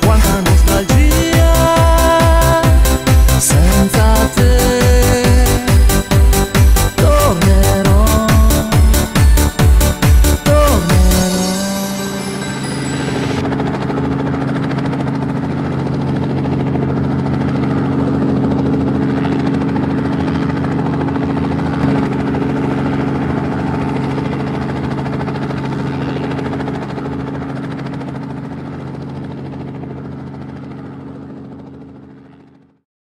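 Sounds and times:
drone propellers whirring: 0.0s - 32.6s.

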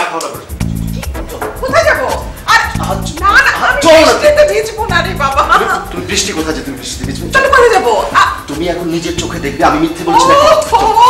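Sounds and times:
woman crying and wailing: 10.0s - 11.0s.

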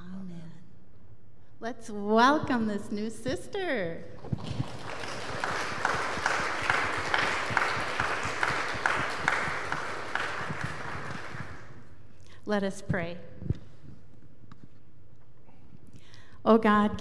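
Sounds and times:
congregation applauding: 4.2s - 12.0s
person clapping in even beat: 4.4s - 11.8s.

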